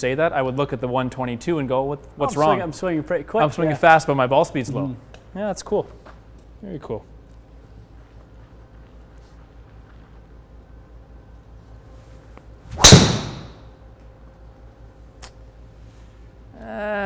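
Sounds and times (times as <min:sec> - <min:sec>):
golf club striking ball: 0:12.8 - 0:13.6.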